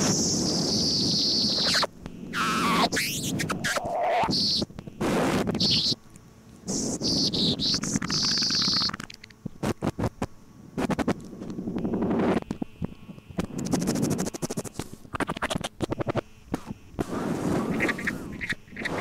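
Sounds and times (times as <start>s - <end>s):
high whistling tones: 0.0s - 4.7s
noisy tape fragments: 0.0s - 6.0s, 6.7s - 19.0s
sparse clicks: 7.7s - 11.6s.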